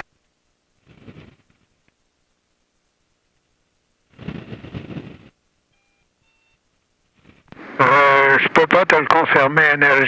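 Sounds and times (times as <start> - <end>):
faint short beeps: 5.7 - 6.7
garbled radio transmission: 7.5 - 10.0
radio voice: 7.6 - 10.0.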